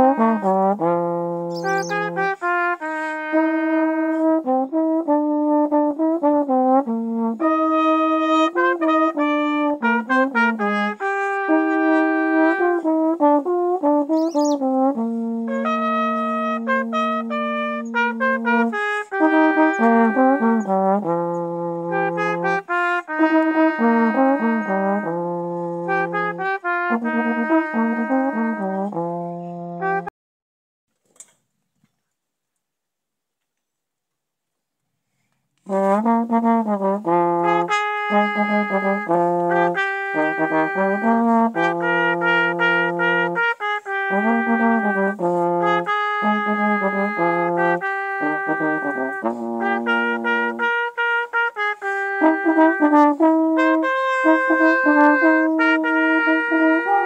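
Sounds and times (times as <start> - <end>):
trombone playing: 0.0 - 30.1, 35.6 - 57.0.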